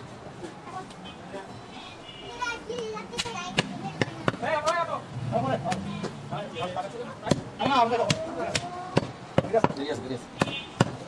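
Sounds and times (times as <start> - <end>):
voices talking: 0.2 - 11.0.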